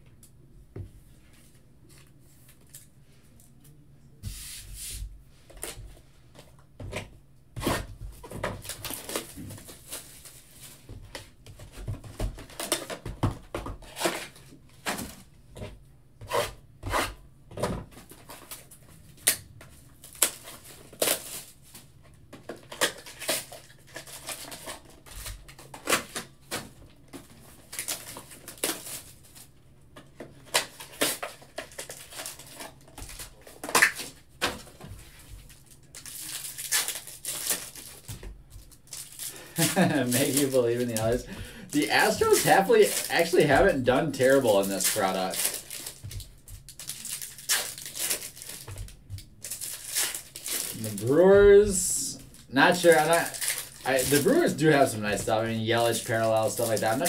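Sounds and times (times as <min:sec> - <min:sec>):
foil pack crinkling: 0:08.5 - 0:10.8, 0:18.0 - 0:21.8, 0:22.4 - 0:29.5, 0:30.3 - 0:57.0.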